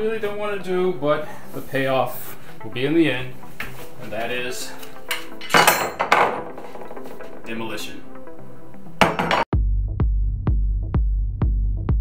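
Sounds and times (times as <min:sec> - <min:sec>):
metal bars clanking on desk: 0:05.1 - 0:07.2.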